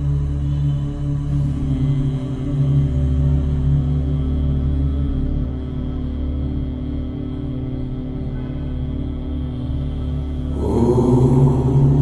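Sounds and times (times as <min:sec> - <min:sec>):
soft ambient music: 0:00.0 - 0:12.0
man humming with closed lips: 0:10.5 - 0:12.0.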